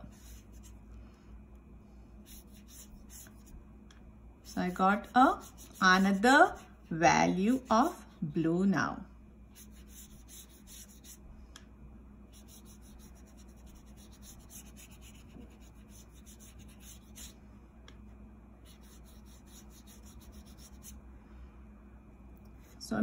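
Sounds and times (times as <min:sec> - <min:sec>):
paint brush stroking paper: 0:00.0 - 0:00.8, 0:02.2 - 0:03.5, 0:04.4 - 0:06.7, 0:09.5 - 0:11.2, 0:12.3 - 0:17.4, 0:18.6 - 0:21.0.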